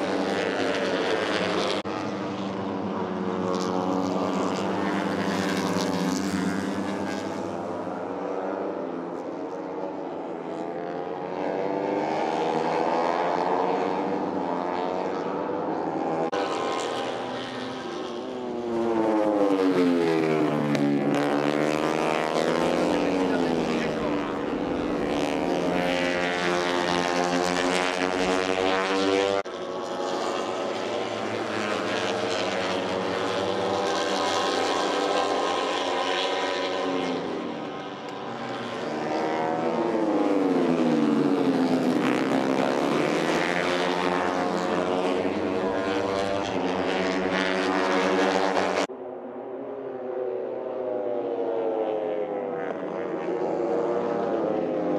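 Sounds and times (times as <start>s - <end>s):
racing motorcycles passing at high revs: 0.0s - 54.9s.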